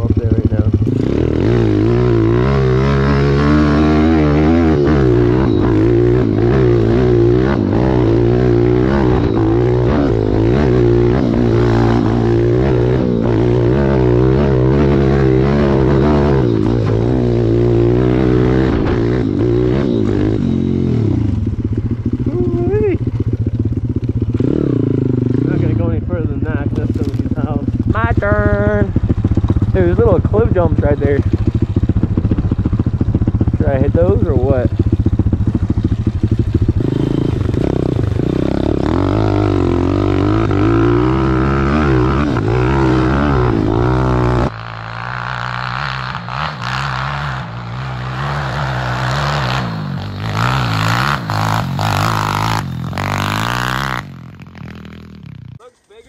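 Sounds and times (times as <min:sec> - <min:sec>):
motorbike engine revving: 0:00.0 - 0:55.6.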